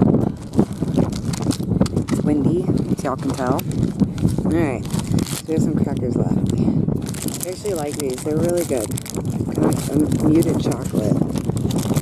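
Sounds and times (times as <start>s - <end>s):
wind blowing across microphone: 0.0s - 12.0s.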